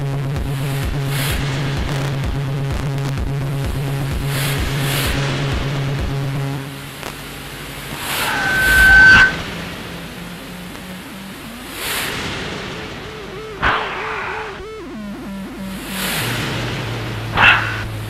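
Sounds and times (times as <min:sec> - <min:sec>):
pulsing synth bass line: 0:00.0 - 0:18.0
rising noise sweep: 0:07.2 - 0:18.0
sharp hit: 0:07.9 - 0:09.4, 0:13.4 - 0:14.7, 0:17.3 - 0:18.0.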